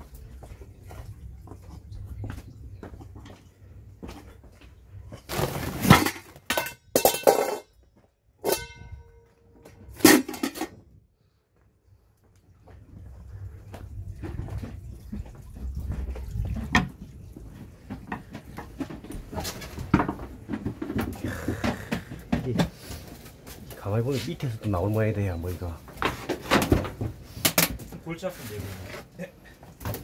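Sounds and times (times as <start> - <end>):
metal pots clattering: 5.2 - 7.8, 8.4 - 10.8
metal bowl ringing: 8.4 - 9.4
shuffling and handling noise: 22.5 - 30.0.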